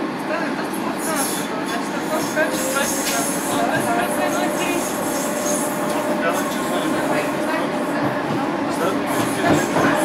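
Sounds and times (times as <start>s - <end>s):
train wheels running on track: 0.0s - 10.0s.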